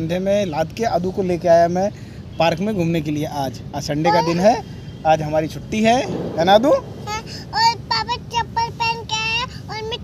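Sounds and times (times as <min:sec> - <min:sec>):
girl singing: 0:07.0 - 0:10.0.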